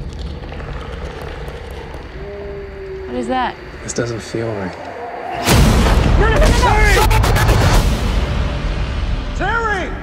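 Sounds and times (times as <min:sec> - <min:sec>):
low rumbling drone: 0:00.0 - 0:09.4.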